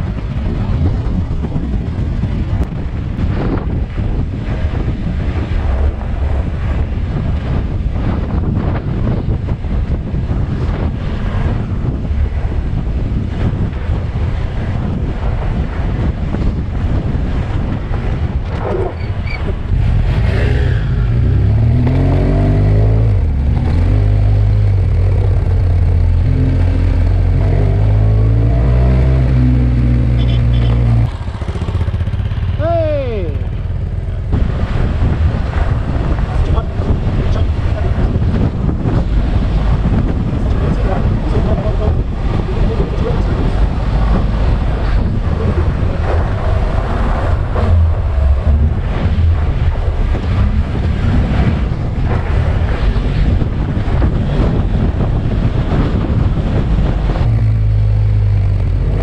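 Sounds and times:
motorcycle engine riding: 0:00.0 - 0:59.0
wind and road noise: 0:00.0 - 0:59.0.

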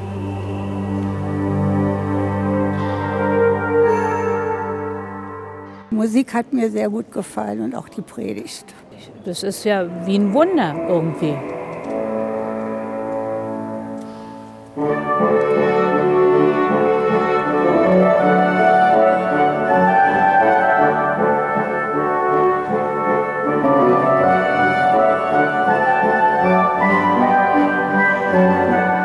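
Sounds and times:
brass-like orchestral music: 0:00.0 - 0:05.9, 0:09.7 - 0:29.0.

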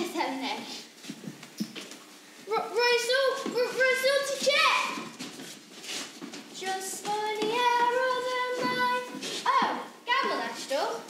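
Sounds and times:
child singing: 0:06.6 - 0:09.7.

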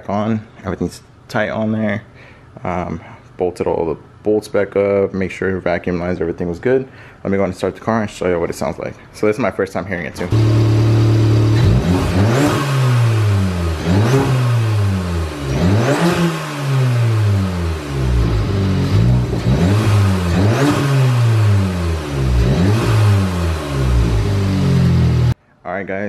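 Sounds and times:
car engine idling: 0:10.2 - 0:25.4
engine revving in throttle blips: 0:10.3 - 0:25.4.

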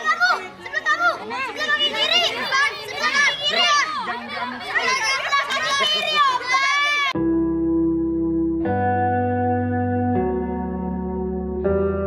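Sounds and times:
children and adults shouting: 0:00.0 - 0:07.2.

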